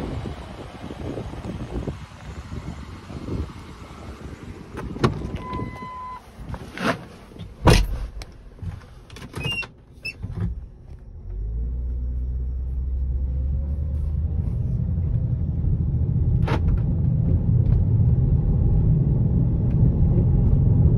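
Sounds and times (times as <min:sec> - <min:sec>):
car engine starting and idling: 0:00.0 - 0:20.9
short beep: 0:05.4 - 0:06.3
knocks and thump: 0:07.6 - 0:08.8.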